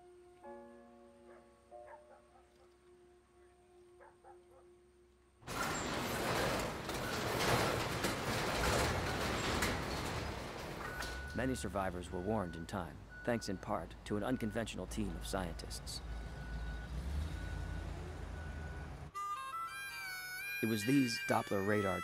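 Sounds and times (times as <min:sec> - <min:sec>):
soft music with held notes: 0:00.0 - 0:05.2, 0:19.1 - 0:22.0
garage door rattling open: 0:05.4 - 0:12.2.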